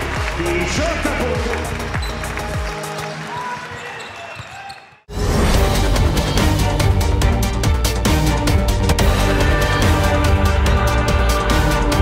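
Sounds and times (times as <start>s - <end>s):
loud fast-beat music: 0.0s - 4.0s, 5.1s - 12.0s.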